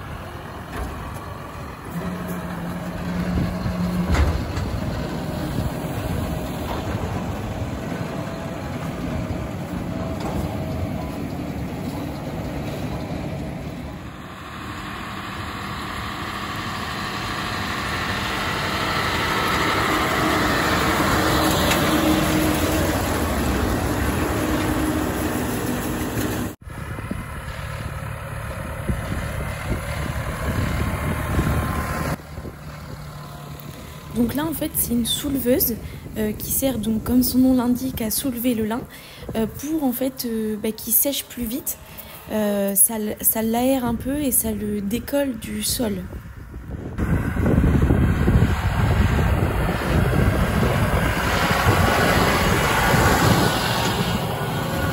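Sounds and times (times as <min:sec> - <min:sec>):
round baler working: 0:00.0 - 0:54.9
tractor engine running: 0:00.0 - 0:54.9.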